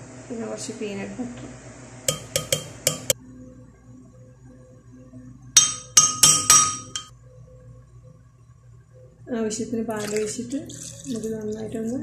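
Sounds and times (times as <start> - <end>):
metal spoon clinking on glass jar: 2.1 - 3.2, 5.6 - 7.1.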